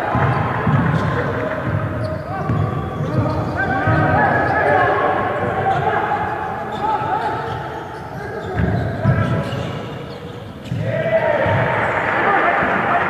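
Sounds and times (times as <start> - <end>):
basketball bouncing on court: 0.0 - 6.8, 7.5 - 11.7
players calling out: 0.0 - 13.0.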